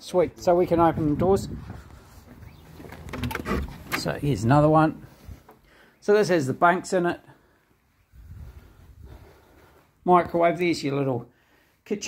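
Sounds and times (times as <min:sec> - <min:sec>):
door unlocking clicks and knocks: 0:02.9 - 0:04.2.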